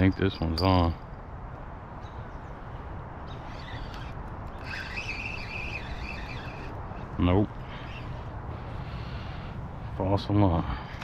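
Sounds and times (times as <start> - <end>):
birds chirping and warbling: 0.0 - 11.0
outdoor background hiss: 0.0 - 11.0.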